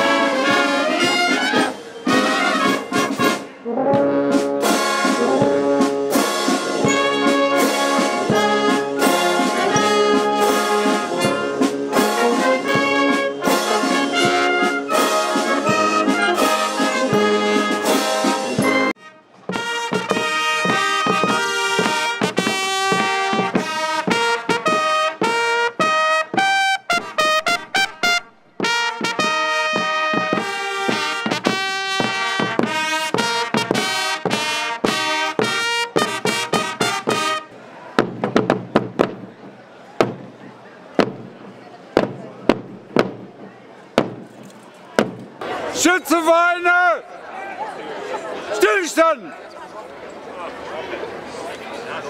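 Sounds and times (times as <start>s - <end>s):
rope drum strokes: 0.0s - 37.4s, 38.0s - 44.4s
fanfare trumpets: 0.0s - 38.0s.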